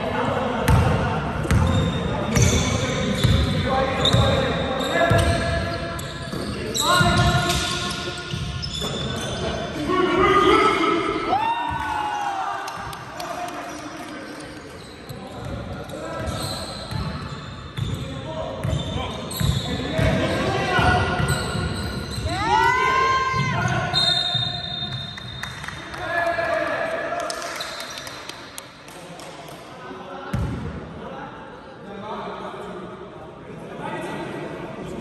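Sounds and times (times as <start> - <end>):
basketball bouncing on hall floor: 0.7 - 4.4, 5.0 - 9.0, 18.6 - 22.4.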